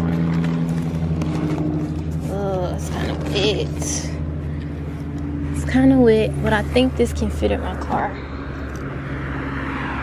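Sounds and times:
car engine idling: 0.0s - 9.2s.

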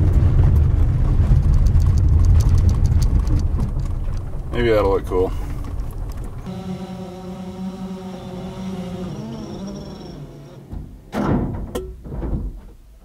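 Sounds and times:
drone crash thud and clatter: 0.0s - 4.5s, 10.7s - 12.6s
drone rotors humming: 5.6s - 11.2s.

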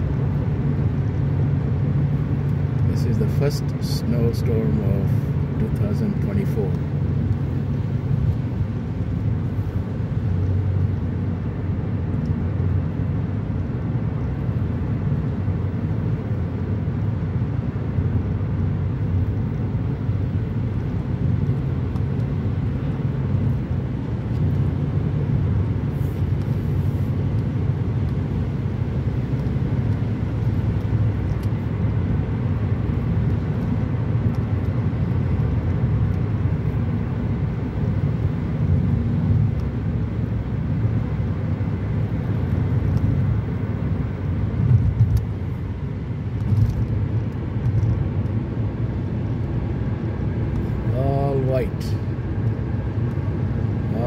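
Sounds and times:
car engine hum: 0.0s - 54.0s.

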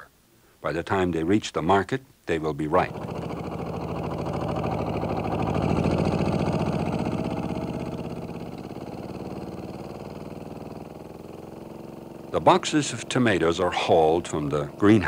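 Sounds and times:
small tractor engine running: 2.6s - 15.0s.

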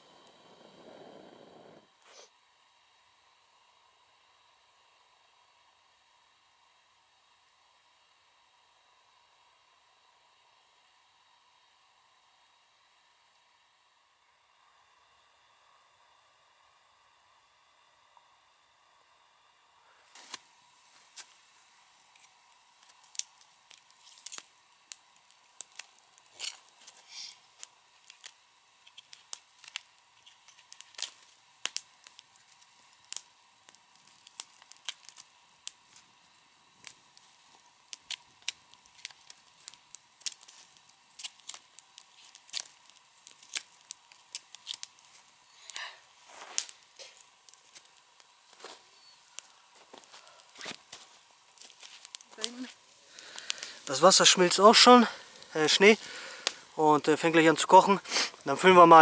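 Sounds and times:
dry sticks snapping: 22.1s - 27.0s, 27.6s - 36.0s, 36.8s - 45.8s, 46.5s - 48.6s, 49.4s - 54.0s, 55.4s - 56.6s.

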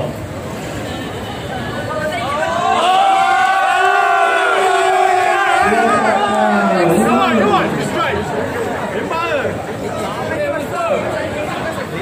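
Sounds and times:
crowd cheering: 2.0s - 9.6s.

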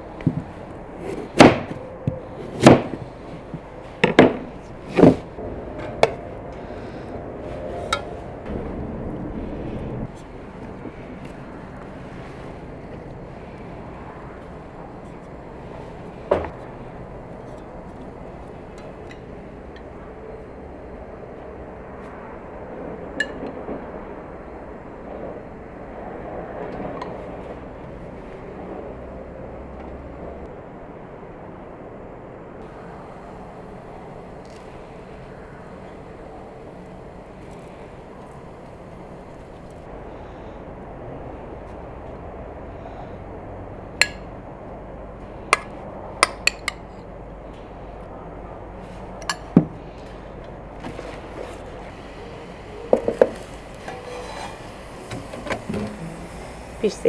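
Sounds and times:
steady background noise: 0.0s - 57.0s.

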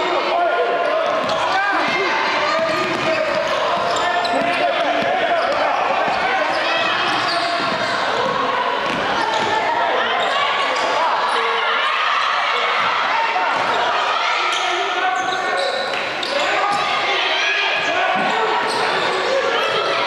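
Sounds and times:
people shouting and chattering: 0.0s - 20.0s.

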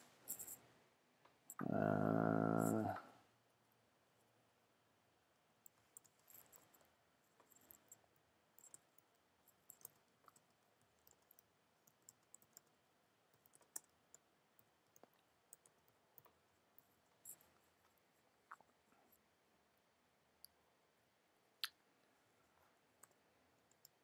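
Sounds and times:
faint keyboard typing: 5.6s - 19.3s, 22.4s - 24.0s.

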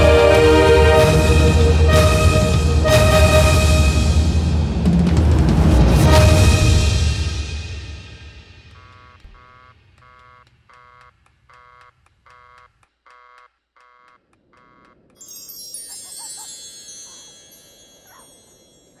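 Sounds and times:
low orchestral chord: 0.0s - 8.1s
high chime shimmer: 15.2s - 19.0s.

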